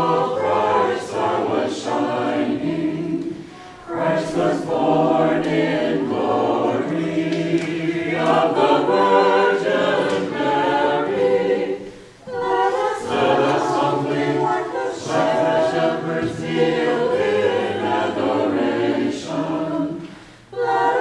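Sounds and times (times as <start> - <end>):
choir singing a carol: 0.0 - 21.0.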